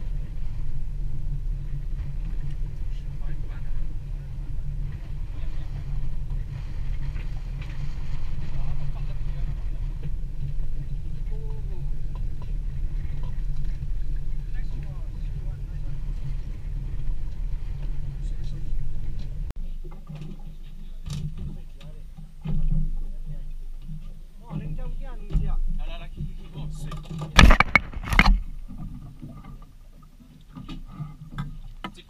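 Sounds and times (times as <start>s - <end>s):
boat engine rumble: 0.0s - 32.0s.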